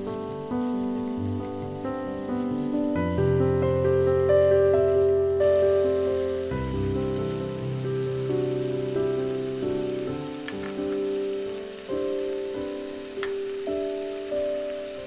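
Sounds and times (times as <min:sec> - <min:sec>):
background piano music: 0:00.0 - 0:15.0
meat sizzling in a frying pan: 0:00.0 - 0:15.0.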